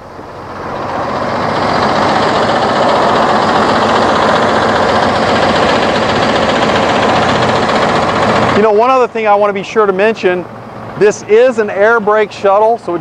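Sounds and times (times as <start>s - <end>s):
diesel bus engine idling: 0.0s - 13.0s.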